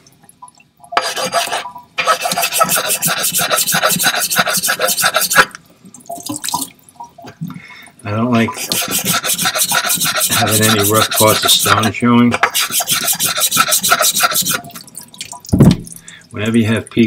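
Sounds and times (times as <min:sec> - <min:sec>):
lapping plate rasping on whetstone: 0:01.0 - 0:05.5, 0:08.6 - 0:11.9, 0:12.5 - 0:14.6.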